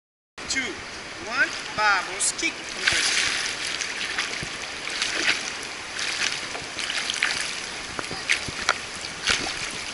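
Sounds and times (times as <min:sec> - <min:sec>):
water splashing in pool: 0:01.3 - 0:09.9.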